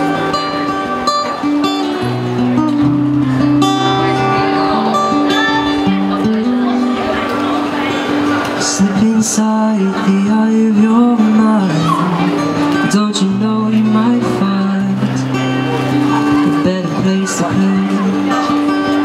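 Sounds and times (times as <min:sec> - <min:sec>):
acoustic guitar strumming: 0:00.0 - 0:19.0
man singing: 0:08.6 - 0:19.0.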